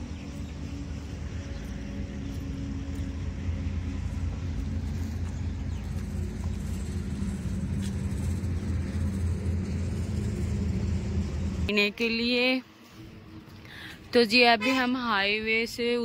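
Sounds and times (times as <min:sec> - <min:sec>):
vehicle engine idling: 0:00.0 - 0:11.9.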